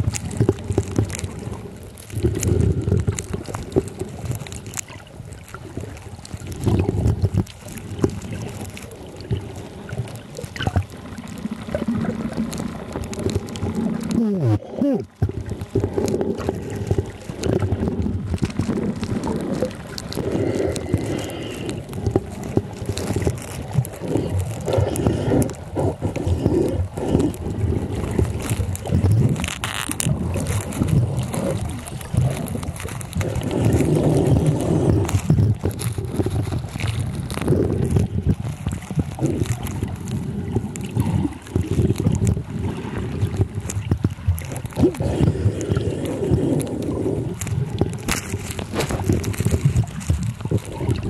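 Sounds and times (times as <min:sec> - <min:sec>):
small knocks underwater: 0:00.0 - 0:14.2, 0:15.0 - 0:51.0
faint clicks: 0:00.0 - 0:42.5
muffled underwater rushing and sloshing: 0:00.0 - 0:51.0.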